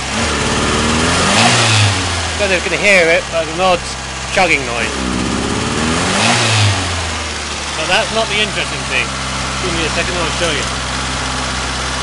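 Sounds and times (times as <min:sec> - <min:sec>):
car engine revving: 0:00.0 - 0:12.0.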